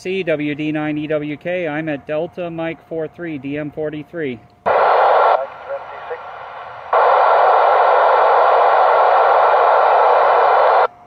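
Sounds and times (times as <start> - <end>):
radio static: 4.7 - 10.9.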